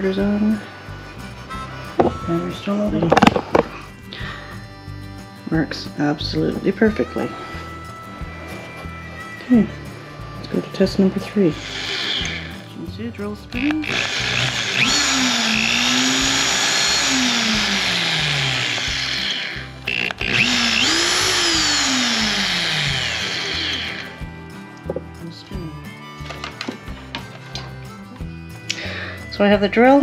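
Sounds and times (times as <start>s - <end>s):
electric drill whirring: 1.1s - 3.9s, 7.2s - 12.8s, 13.5s - 24.3s.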